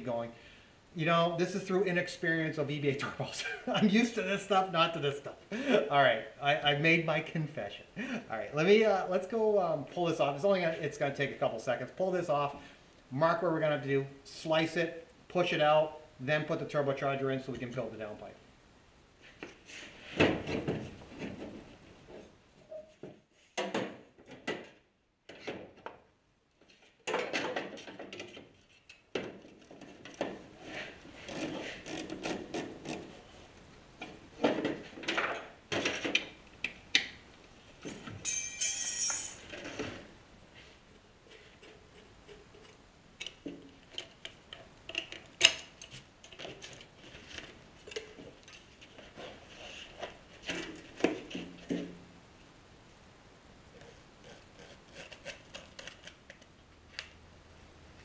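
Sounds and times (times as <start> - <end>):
metal clinks and scrapes: 37.8 - 40.0.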